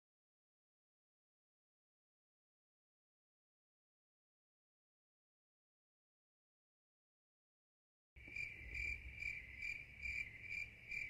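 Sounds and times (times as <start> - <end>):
cricket chirping: 8.2 - 11.0.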